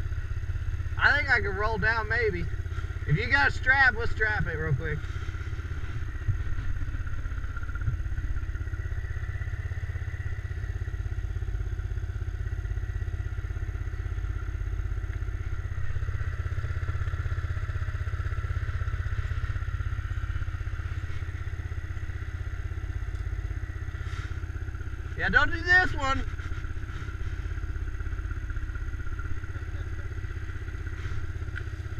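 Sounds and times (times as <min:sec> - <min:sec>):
atv engine idling: 0:00.0 - 0:31.9.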